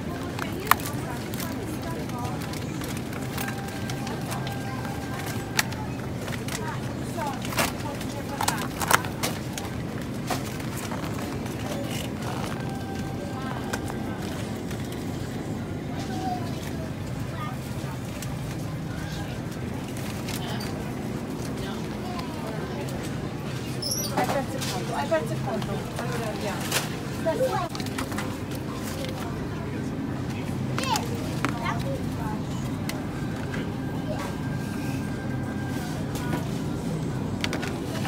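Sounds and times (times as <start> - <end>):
faint voices: 0.0 - 38.0
plastic trays clicking and crackling: 0.2 - 15.0.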